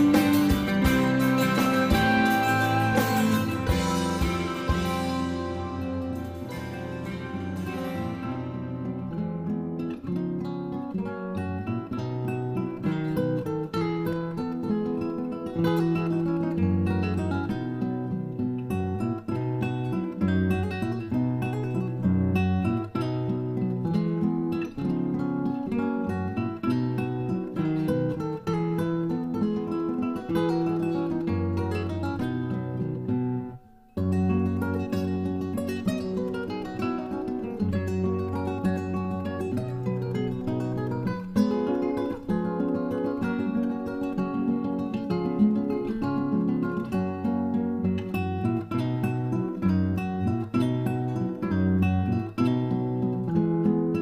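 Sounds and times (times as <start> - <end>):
acoustic guitar strummed and picked: 0.0 - 54.0.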